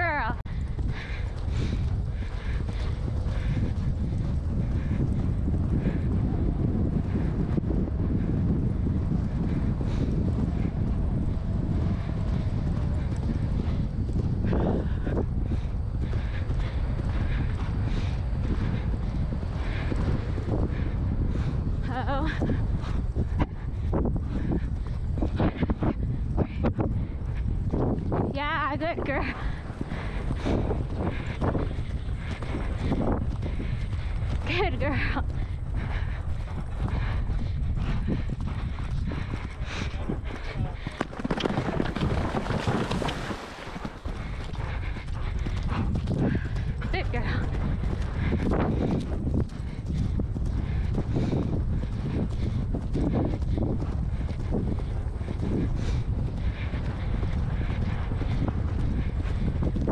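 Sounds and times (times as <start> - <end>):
horse hoofbeats on grass: 0.0 - 59.9
wind noise on microphone: 0.0 - 59.9.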